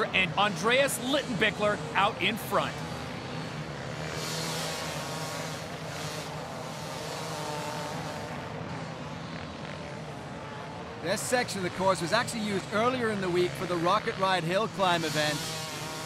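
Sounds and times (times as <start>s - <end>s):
dirt bike engines revving high: 0.0s - 16.0s.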